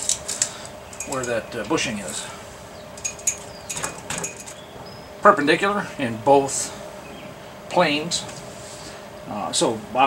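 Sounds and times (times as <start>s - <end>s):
metal parts clinking: 0.0s - 1.4s, 3.0s - 4.6s.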